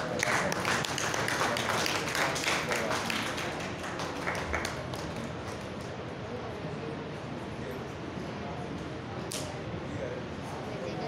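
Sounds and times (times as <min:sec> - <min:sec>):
small audience clapping: 0:00.0 - 0:06.1.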